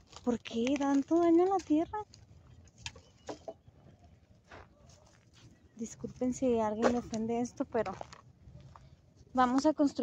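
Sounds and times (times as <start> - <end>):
footsteps on dirt path: 0.0 - 3.5, 4.1 - 9.8.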